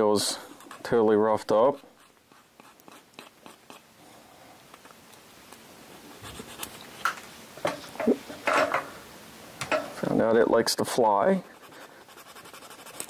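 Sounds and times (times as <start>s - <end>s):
hand file rasping on plastic: 11.4s - 13.0s.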